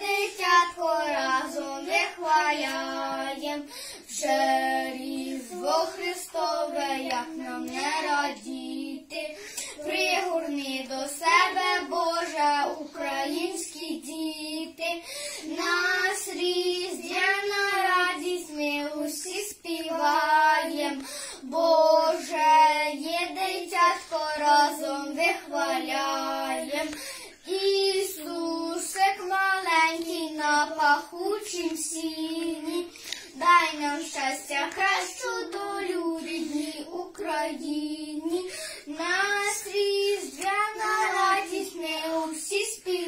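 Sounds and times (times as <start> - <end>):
boys singing a carol: 0.0 - 43.0.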